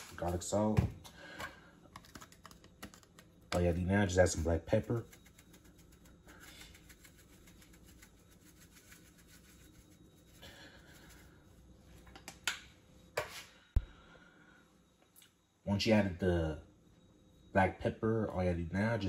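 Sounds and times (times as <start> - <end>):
pepper shaker rattling: 4.3 - 11.3.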